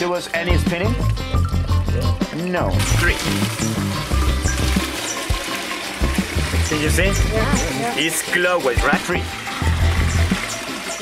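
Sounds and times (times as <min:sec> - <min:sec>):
music playing: 0:00.0 - 0:11.0
water draining from metal basin: 0:02.7 - 0:11.0
water splashing into plastic bucket: 0:02.8 - 0:11.0.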